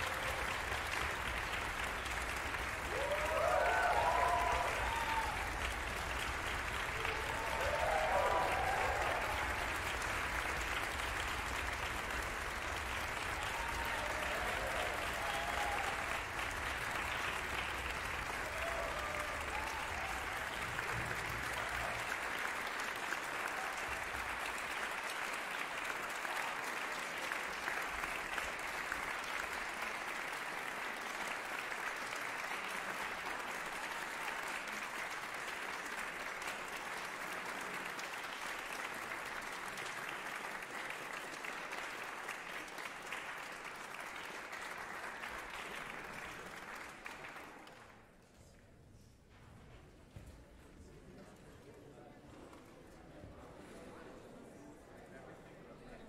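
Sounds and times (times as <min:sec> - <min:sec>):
audience applauding: 0:00.0 - 0:48.3.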